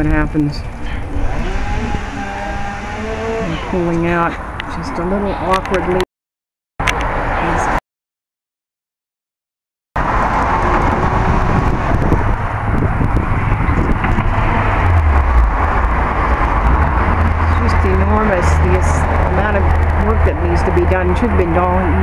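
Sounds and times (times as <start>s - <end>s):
road traffic rush: 0.0s - 6.1s, 6.8s - 7.8s, 10.0s - 22.0s
person talking: 1.7s - 6.1s, 17.5s - 22.0s.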